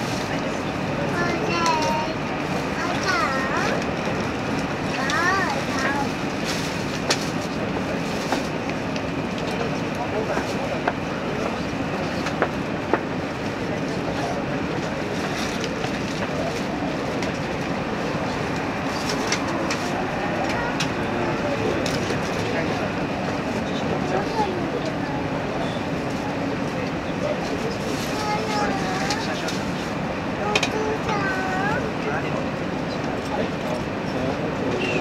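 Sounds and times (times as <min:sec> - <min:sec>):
train cabin rumble: 0:00.0 - 0:35.0.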